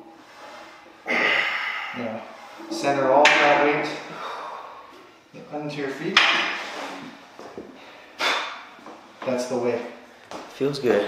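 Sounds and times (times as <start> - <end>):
hard breathy exhale: 1.1 - 2.0, 7.9 - 8.7.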